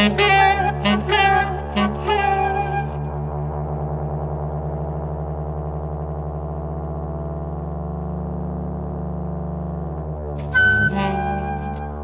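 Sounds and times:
euphonium low notes: 0.0s - 12.0s
tenor saxophone low notes: 0.0s - 12.0s.

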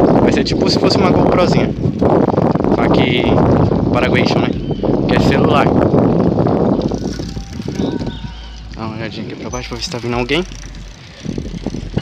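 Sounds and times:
bicycle tyre noise on street: 0.0s - 12.0s
wind buffeting microphone: 0.0s - 12.0s.

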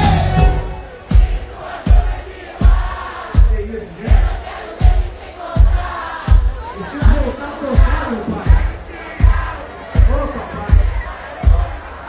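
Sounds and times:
live band playing: 0.0s - 2.8s
deep drum beat: 0.0s - 11.8s
crowd voices: 0.0s - 12.0s.

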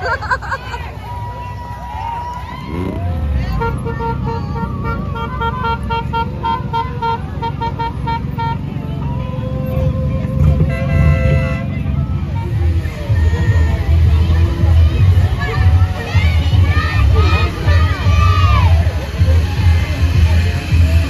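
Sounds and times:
motorcycles rumbling past: 2.5s - 3.9s
long horn blasts: 3.4s - 8.9s, 10.3s - 11.9s
horn beeping short notes: 3.5s - 12.2s.

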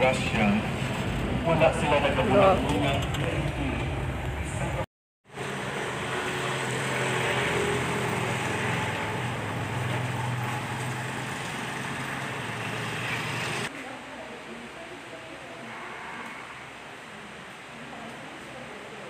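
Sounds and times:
street noise: 0.0s - 19.0s.

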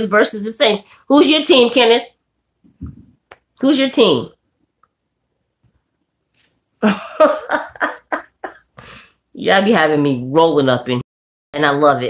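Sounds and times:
woman laughing: 6.8s - 9.0s.

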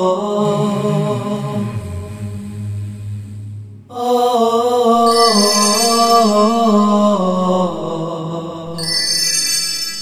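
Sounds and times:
wordless chanted singing: 0.0s - 9.2s
high steady tones: 5.0s - 7.2s, 8.8s - 10.0s.

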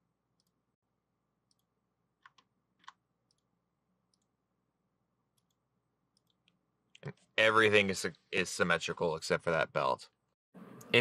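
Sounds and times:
computer mouse clicks: 0.4s - 0.6s, 1.5s - 3.5s, 5.3s - 6.6s.

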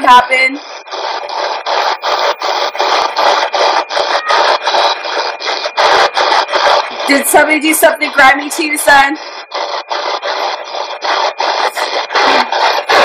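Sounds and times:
radio static bursts chopping: 0.0s - 13.0s.

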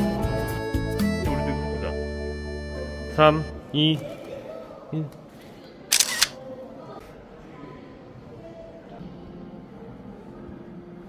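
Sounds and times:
camera shutter sound: 5.9s - 6.4s.

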